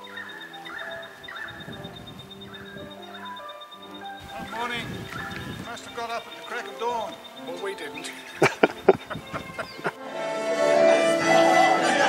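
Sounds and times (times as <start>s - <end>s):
person laughing: 8.1s - 10.0s.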